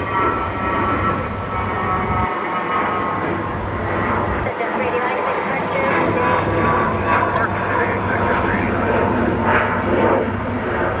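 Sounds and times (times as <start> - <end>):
turboprop engines droning: 0.0 - 11.0.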